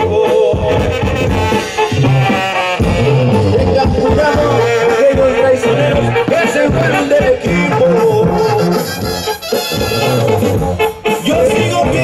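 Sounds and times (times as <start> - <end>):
brass band music through speakers: 0.0 - 12.0.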